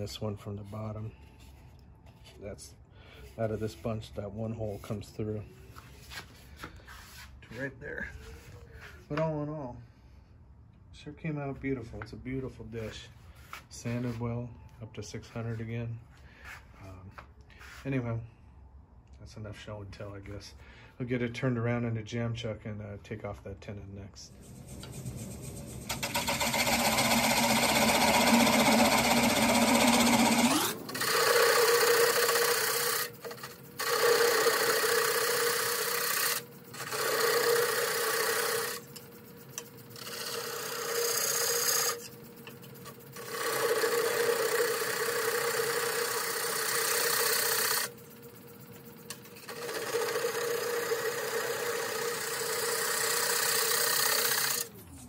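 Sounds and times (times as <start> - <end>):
lathe running: 24.2 - 54.8
turning tool cutting wood on lathe: 24.3 - 54.8.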